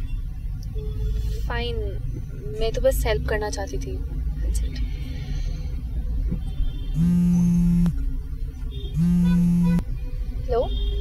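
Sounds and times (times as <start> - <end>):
mobile phone ringing: 7.0 - 7.9, 9.0 - 9.8.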